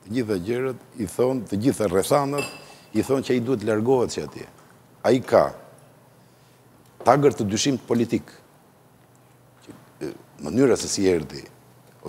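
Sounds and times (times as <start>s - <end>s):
man speaking: 0.0s - 5.7s, 7.0s - 8.4s, 9.6s - 11.6s
glass clinking: 2.4s - 2.8s.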